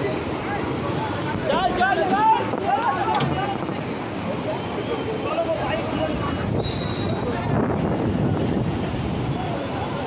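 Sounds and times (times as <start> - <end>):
floodwater rushing: 0.0 - 10.0
people talking: 0.0 - 10.0
wind buffeting microphone: 6.1 - 10.0.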